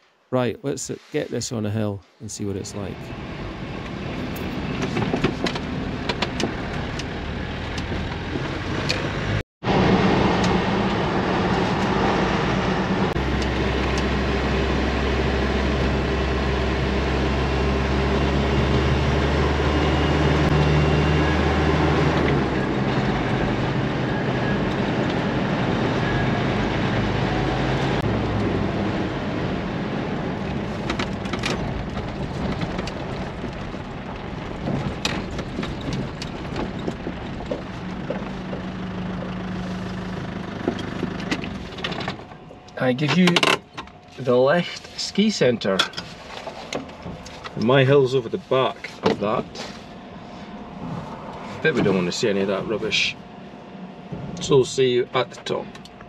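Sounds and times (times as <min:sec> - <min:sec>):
engine and road noise in cabin: 0:02.7 - 0:56.0.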